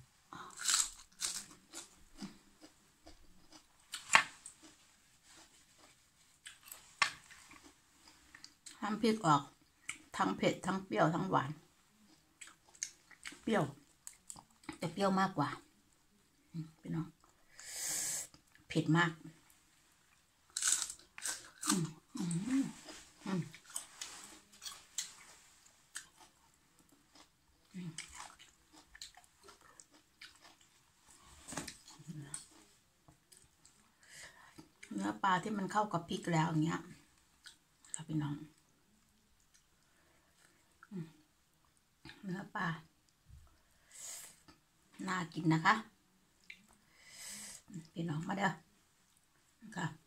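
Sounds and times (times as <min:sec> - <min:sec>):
crunchy chewing: 0:00.4 - 0:08.7, 0:20.5 - 0:32.7
crunchy bite into cabbage leaf: 0:00.5 - 0:02.3, 0:20.6 - 0:25.1.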